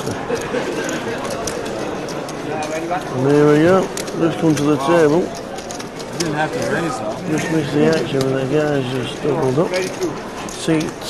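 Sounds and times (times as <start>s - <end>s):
murmur of many voices: 0.0s - 11.0s
poker chips clicking: 0.0s - 11.0s.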